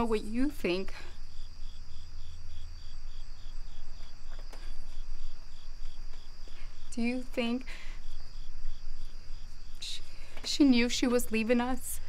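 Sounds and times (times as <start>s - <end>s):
crickets chirping: 0.0s - 12.0s.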